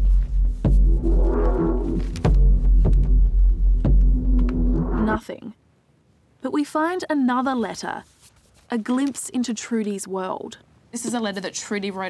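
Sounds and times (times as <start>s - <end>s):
low droning music: 0.0s - 5.2s
paper pages turning: 8.0s - 9.5s.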